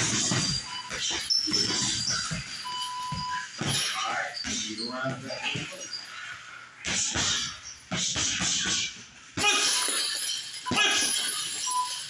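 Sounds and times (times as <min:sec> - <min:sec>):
thuds on punching bags: 0:00.0 - 0:04.7.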